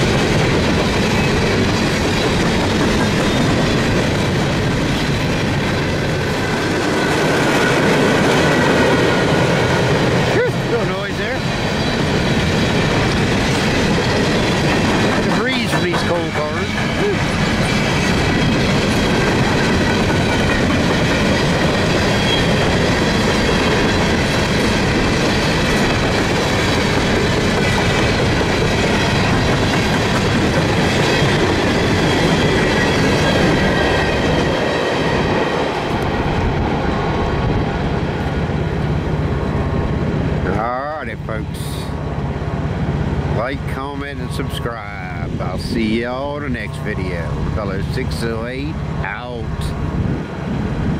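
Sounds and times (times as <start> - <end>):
train wheels clattering over rail joints: 0.0 - 40.6
empty freight cars rattling: 0.0 - 49.9.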